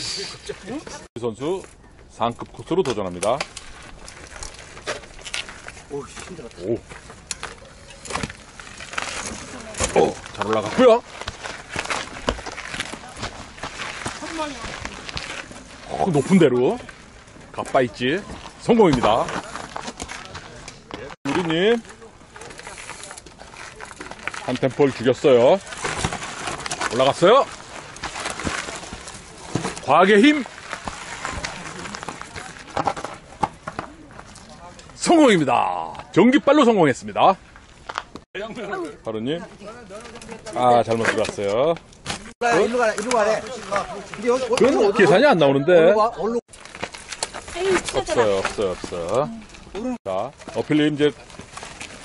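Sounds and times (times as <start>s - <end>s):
bike tyres knocking on rocks: 2.8s - 15.6s, 18.2s - 22.0s.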